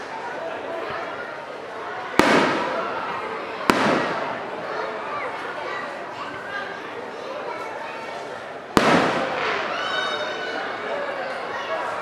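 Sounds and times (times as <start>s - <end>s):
crowd chatter: 0.0s - 12.0s
firework shells bursting: 2.2s - 2.8s, 3.7s - 4.3s, 8.8s - 9.6s.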